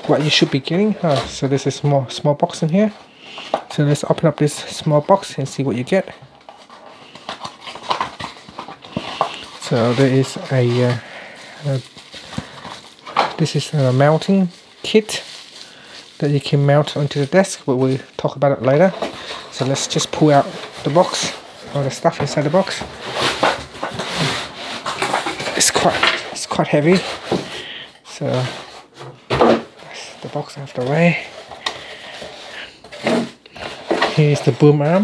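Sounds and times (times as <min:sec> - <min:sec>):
paperboard box being opened: 0:06.4 - 0:11.0, 0:18.7 - 0:27.5
cardboard rubbing and scraping: 0:06.5 - 0:11.0, 0:18.8 - 0:27.5, 0:28.2 - 0:35.0.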